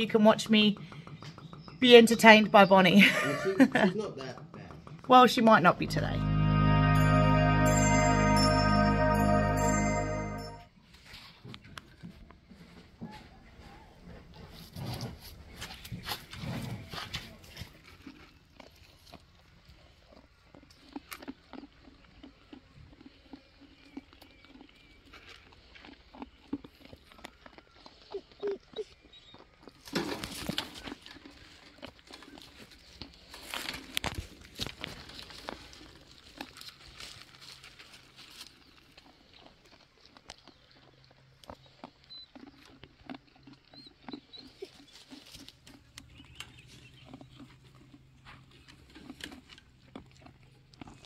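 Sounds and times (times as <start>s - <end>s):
lamb nibbling pellets: 16.9s - 51.0s.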